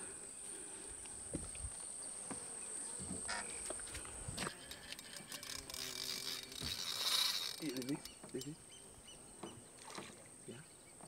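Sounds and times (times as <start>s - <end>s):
high-pitched insect buzz: 1.2s - 8.2s.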